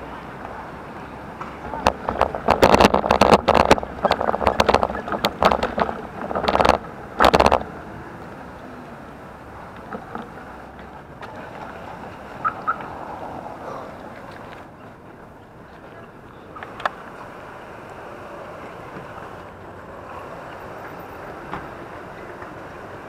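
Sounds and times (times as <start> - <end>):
bicycle rattling over cobblestones: 0.0 - 23.0
tyres on smooth asphalt: 0.0 - 23.0.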